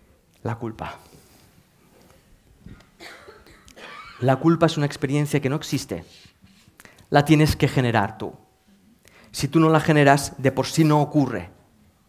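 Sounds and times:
faint cough: 0:02.9 - 0:04.3.

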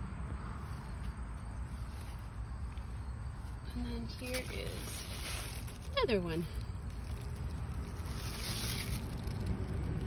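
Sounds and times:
rustling hiss: 0:04.1 - 0:10.0.

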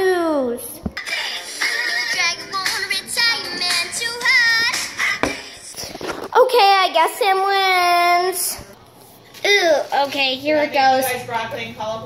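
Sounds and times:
boy singing: 0:01.0 - 0:05.6.

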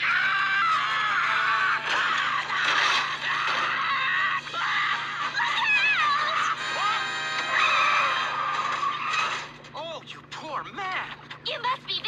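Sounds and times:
cartoon voice screaming: 0:00.0 - 0:08.3
background music: 0:04.4 - 0:08.8.

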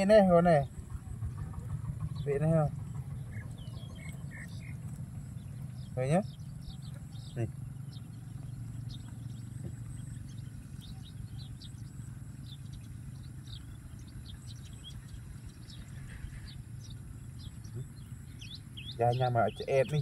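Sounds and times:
small birds chirping: 0:00.0 - 0:20.0
steady low hum: 0:00.0 - 0:20.0.

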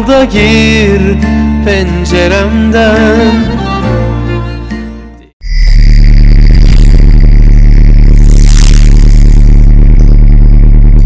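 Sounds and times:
deep bass rumble: 0:05.5 - 0:11.0.

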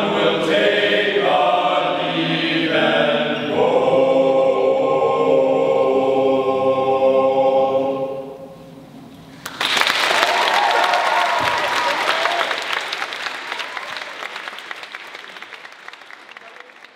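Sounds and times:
men's a cappella chord: 0:00.0 - 0:08.8
audience applause: 0:09.4 - 0:16.9
audience shouts: 0:10.2 - 0:12.6.

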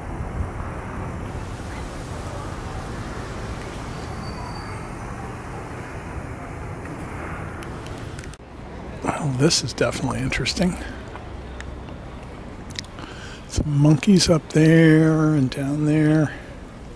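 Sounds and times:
low hum of distant traffic: 0:00.0 - 0:16.9.

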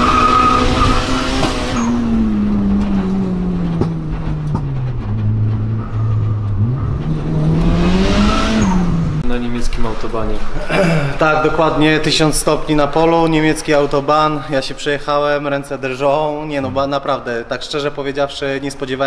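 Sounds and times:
turbocharged car engine revving: 0:00.0 - 0:10.5.

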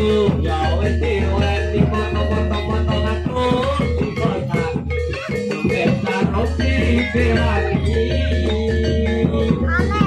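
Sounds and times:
loud music with deep bass: 0:00.0 - 0:10.0.

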